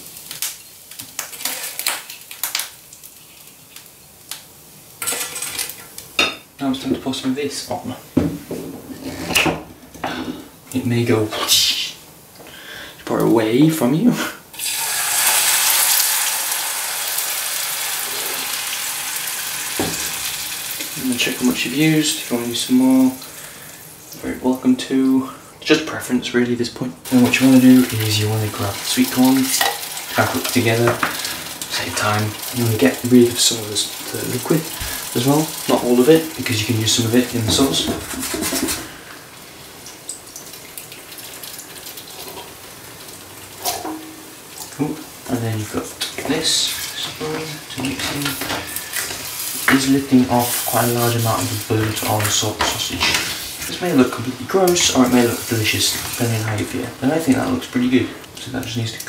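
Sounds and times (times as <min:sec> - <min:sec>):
sauce sizzling in a frying pan: 0:00.0 - 0:08.6, 0:14.5 - 0:25.5, 0:27.0 - 0:59.0
knock: 0:08.2 - 0:08.8.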